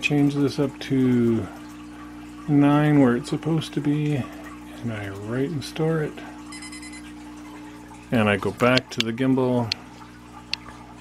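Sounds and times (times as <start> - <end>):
low electrical hum: 0.0 - 11.0
high-pitched electronic beep: 6.5 - 7.1.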